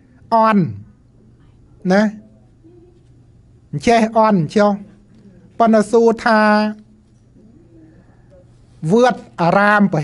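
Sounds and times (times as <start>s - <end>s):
faint low hum: 0.0s - 10.0s
faint low murmur: 0.0s - 10.0s
man talking: 0.3s - 0.9s, 1.8s - 2.3s, 3.7s - 5.0s, 5.6s - 6.9s, 8.8s - 10.0s.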